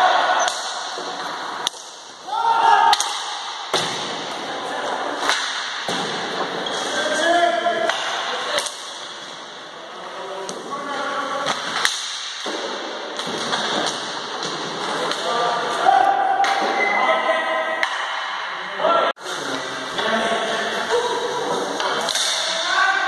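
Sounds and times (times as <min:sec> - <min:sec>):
players shouting: 0:00.0 - 0:01.6, 0:02.2 - 0:03.7
sticks and ball clacking: 0:00.3 - 0:02.2, 0:05.2 - 0:06.1, 0:07.8 - 0:09.4, 0:11.4 - 0:15.3, 0:21.8 - 0:22.6.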